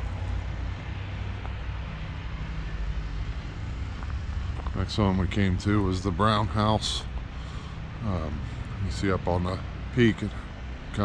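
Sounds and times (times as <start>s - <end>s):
low engine hum: 0.0s - 11.0s
noisy rush: 0.0s - 11.0s.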